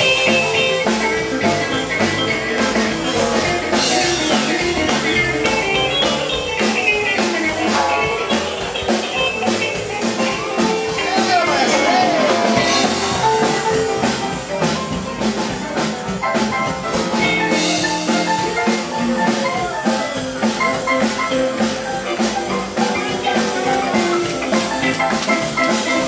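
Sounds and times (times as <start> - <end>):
bass: 0.0 - 26.0
electric guitar: 0.0 - 26.0
fast drum-kit beat: 0.0 - 26.0.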